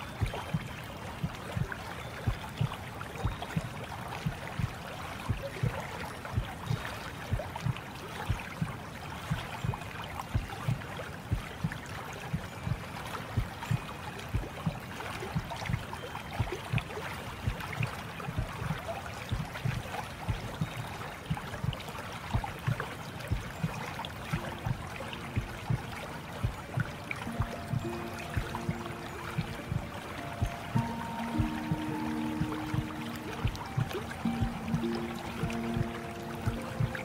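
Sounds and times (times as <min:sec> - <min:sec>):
low lapping thumps: 0:00.0 - 0:37.0
running water: 0:00.0 - 0:37.0
soft sustained music tones: 0:00.0 - 0:37.0.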